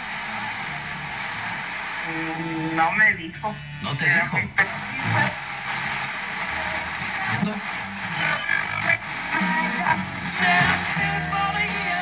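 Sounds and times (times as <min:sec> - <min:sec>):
radio static between stations: 0:00.0 - 0:12.0
radio tuning across stations: 0:00.0 - 0:12.0.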